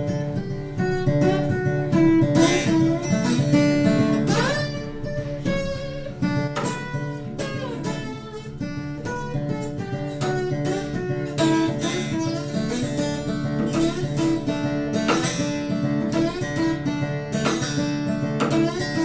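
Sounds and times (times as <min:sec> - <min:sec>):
slide acoustic guitar: 0:00.0 - 0:19.0.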